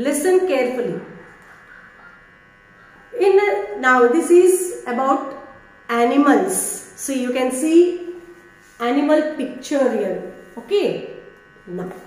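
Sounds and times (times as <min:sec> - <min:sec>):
woman's voice: 0:00.0 - 0:01.2, 0:03.2 - 0:08.1, 0:08.8 - 0:12.0
faint electrical buzz: 0:00.0 - 0:12.0.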